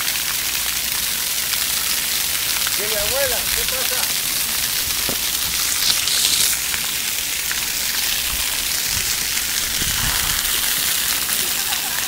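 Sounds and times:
fountain jets spraying on concrete: 0.0 - 12.0.

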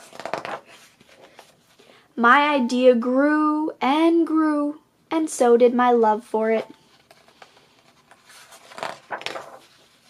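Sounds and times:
book page turning rustle: 0.0 - 1.8, 6.6 - 10.0.

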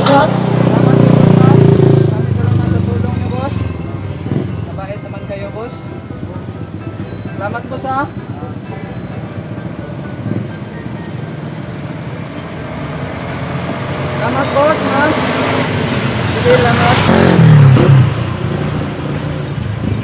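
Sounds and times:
voices: 0.0 - 11.5, 14.1 - 15.4, 16.1 - 18.0
motor vehicle passing: 0.0 - 20.0
background music: 3.1 - 18.1.

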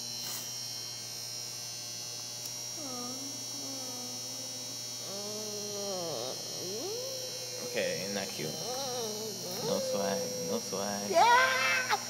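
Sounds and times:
electrical mains hum: 0.0 - 12.0
person making gliding vocal sounds: 2.8 - 12.0.

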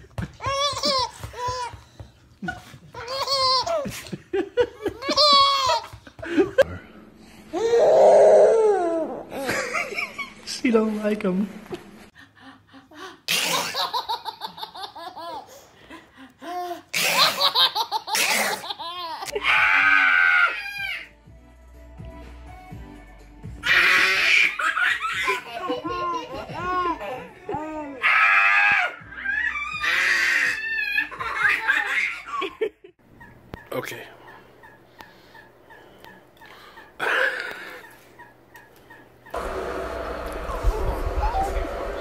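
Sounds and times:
baby laughing: 0.2 - 6.6, 13.3 - 15.6, 16.4 - 19.4, 23.6 - 28.0, 29.6 - 39.4.

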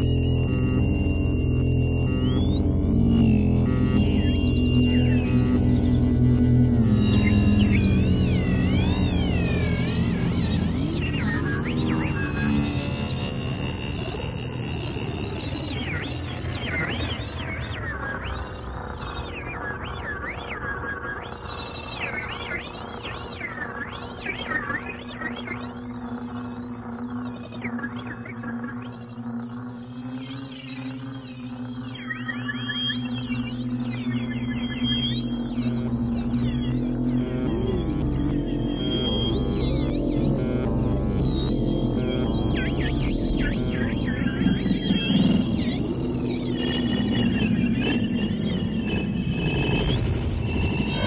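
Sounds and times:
steady low drone: 0.0 - 19.9, 25.1 - 51.0
electronic feedback music: 0.0 - 51.0.

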